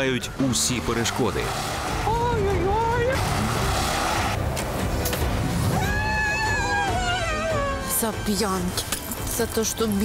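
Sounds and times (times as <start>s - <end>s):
car engine and tyre noise: 0.4s - 5.7s.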